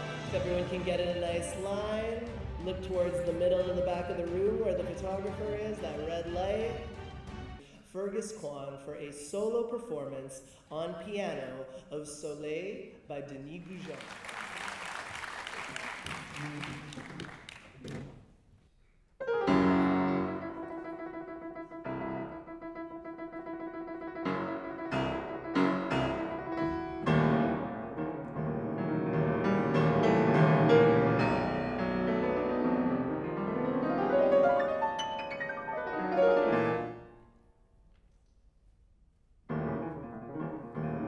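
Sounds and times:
applause: 13.6 - 18.2
solo classical piano piece: 19.2 - 37.1, 39.5 - 41.0.

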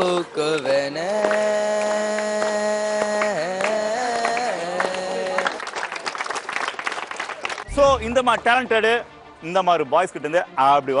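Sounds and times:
crowd clapping: 0.0 - 8.6.

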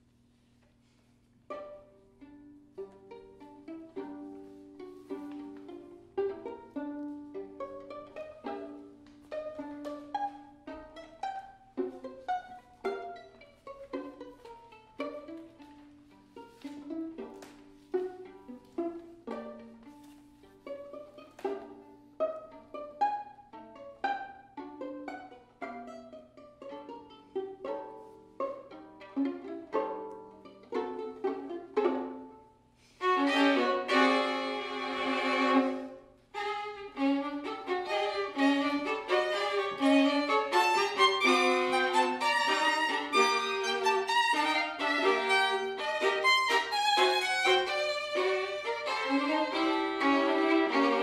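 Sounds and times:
violins playing pizzicato tango: 0.0 - 51.0.

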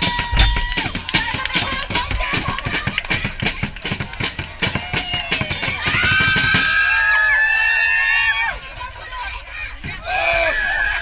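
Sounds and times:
drums beating fast rhythm: 0.0 - 7.0
crowd cheering and chanting: 0.0 - 11.0.

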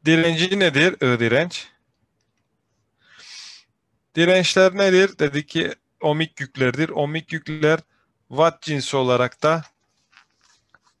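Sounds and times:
person breathing near microphone: 2.8 - 3.8.

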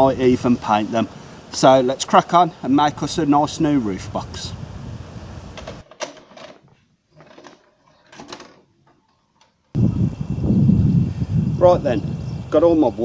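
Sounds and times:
cassette recorder clicks and clunks: 5.6 - 6.6
microphone rumble: 9.8 - 13.0.

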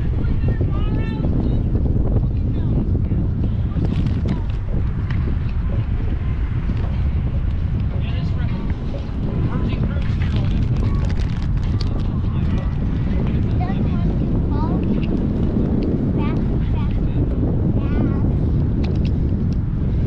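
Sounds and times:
faint voices: 0.0 - 20.0
wind buffeting microphone: 0.0 - 20.0.

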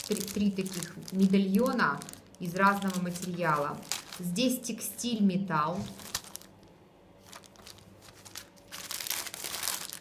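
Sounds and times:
plastic bags crinkling: 0.0 - 4.7, 5.7 - 10.0.

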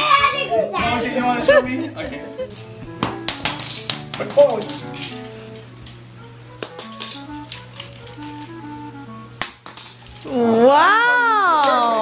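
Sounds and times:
simple melody of short notes: 0.8 - 9.4.

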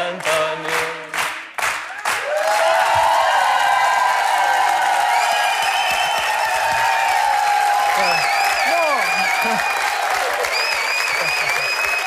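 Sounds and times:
audience clapping in time: 0.0 - 12.0
applause and cheering: 0.1 - 12.0.

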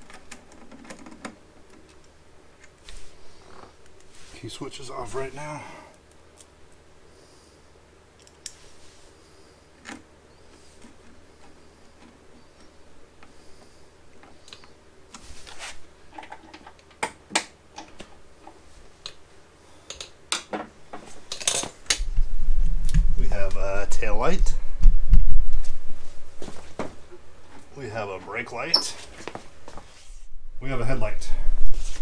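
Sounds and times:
low hum: 21.9 - 32.0.

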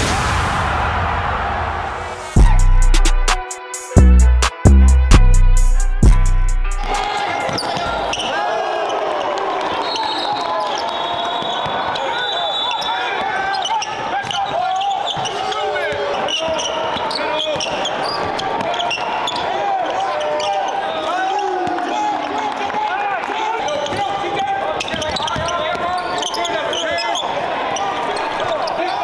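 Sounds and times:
music: 1.7 - 7.5
sneaker squeaks: 7.4 - 8.4, 9.8 - 21.0, 23.7 - 29.0.

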